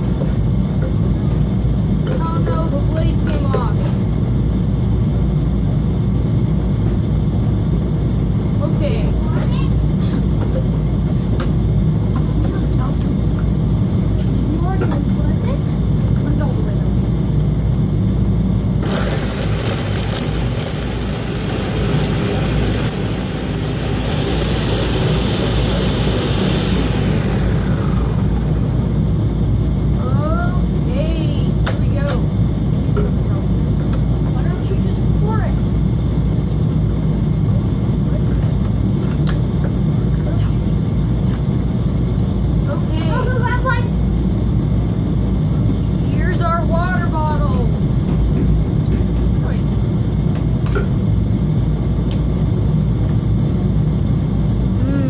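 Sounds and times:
blender motor whirring: 0:18.8 - 0:29.4.

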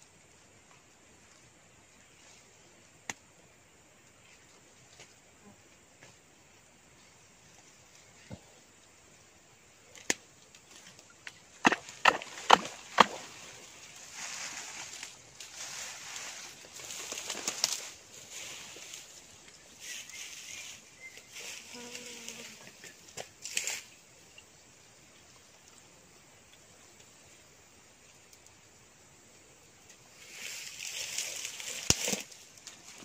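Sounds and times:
rustling of dry leaves: 0:09.8 - 0:24.2, 0:29.9 - 0:33.0.

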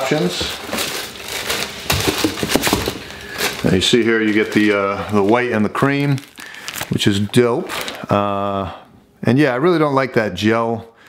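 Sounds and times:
paper and plastic crinkling: 0:00.0 - 0:08.1.

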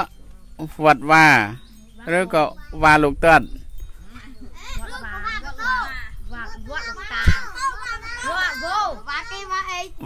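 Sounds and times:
young children talking: 0:00.0 - 0:10.0.

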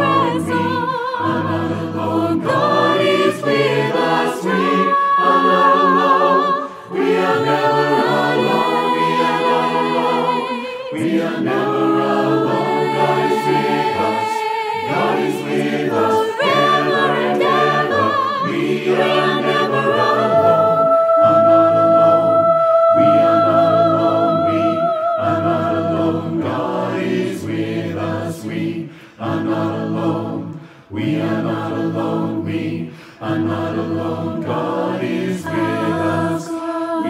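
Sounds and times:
choir singing in harmony: 0:00.0 - 0:37.0.

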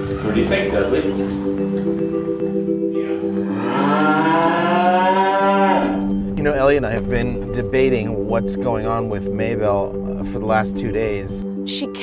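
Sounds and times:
cow mooing: 0:03.0 - 0:06.2.

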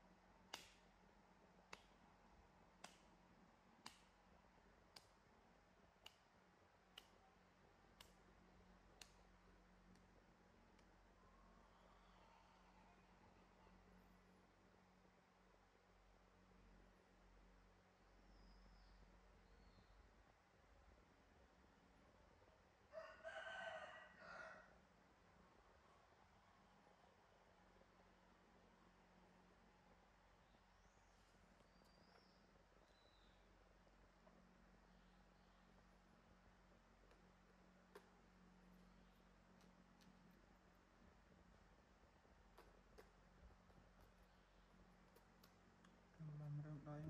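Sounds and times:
rooster crowing: 0:22.9 - 0:24.8.

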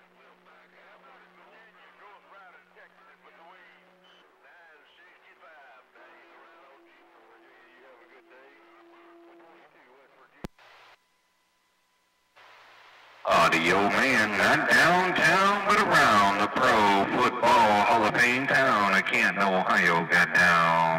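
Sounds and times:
faint voices over radio: 0:00.0 - 0:11.0, 0:13.2 - 0:20.9
radio hiss and hum: 0:00.0 - 0:20.9.

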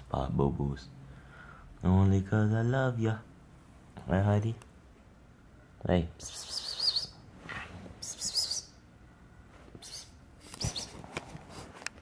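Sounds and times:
high-pitched warbling chirps: 0:06.2 - 0:07.2.

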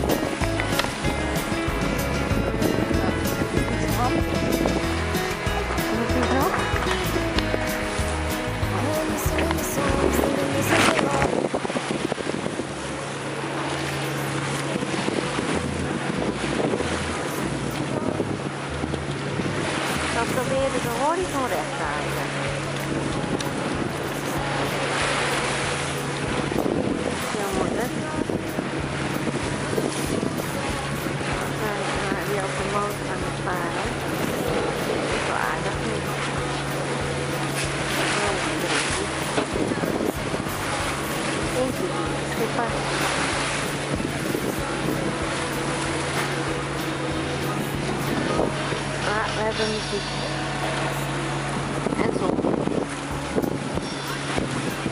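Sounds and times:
wind buffeting microphone: 0:00.0 - 0:08.8, 0:09.4 - 0:49.8, 0:50.4 - 0:54.9
steady low drone: 0:00.0 - 0:54.9
waves against boat hull: 0:00.0 - 0:54.9.

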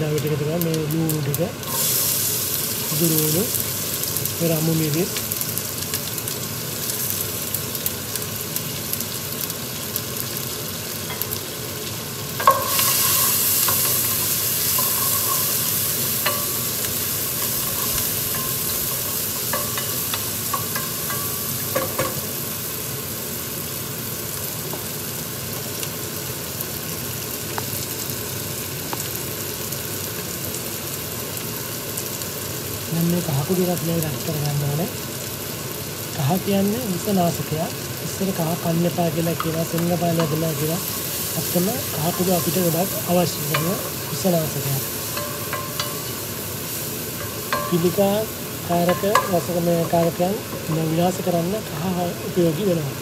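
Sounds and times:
onions sizzling in hot oil: 0:00.0 - 0:53.0
wooden spoon knocking on pot: 0:48.8 - 0:50.7.

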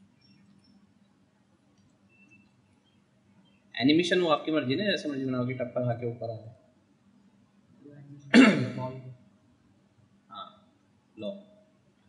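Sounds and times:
man clearing his throat: 0:08.3 - 0:09.0.

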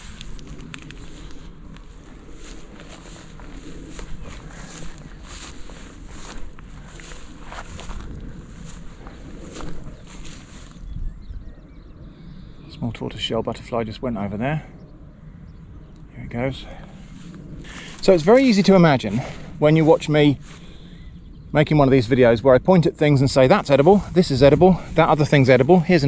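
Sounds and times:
footsteps through dry grass: 0:00.0 - 0:11.2, 0:16.8 - 0:21.1, 0:23.6 - 0:26.0
steady low rumble: 0:00.0 - 0:26.0.

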